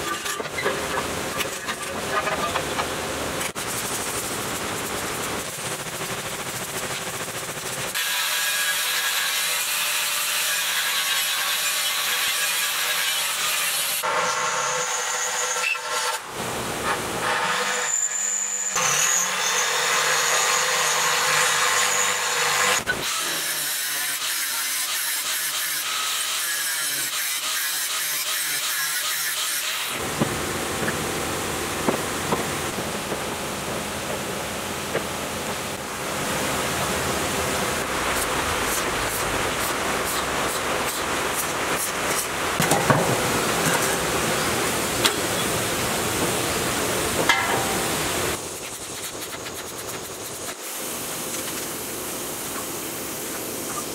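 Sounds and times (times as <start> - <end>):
angle grinder cutting steel: 7.9 - 16.3, 16.9 - 30.0.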